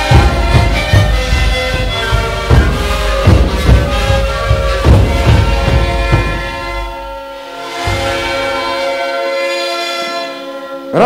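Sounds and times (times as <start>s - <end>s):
panpipe ensemble chord: 0.0s - 11.0s.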